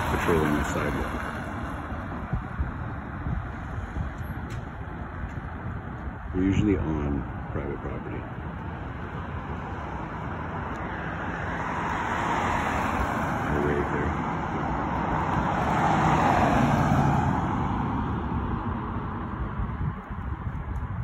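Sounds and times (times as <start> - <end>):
car passing by: 0.0 - 2.4, 9.4 - 19.8.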